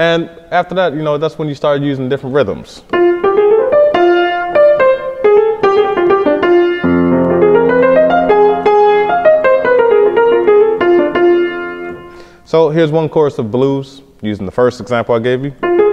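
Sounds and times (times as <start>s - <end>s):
solo grand piano: 2.9s - 12.2s, 15.6s - 15.9s.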